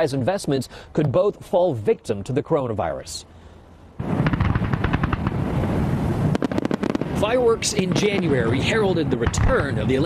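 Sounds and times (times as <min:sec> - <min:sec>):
fireworks bangs and crackles: 0:04.0 - 0:10.0.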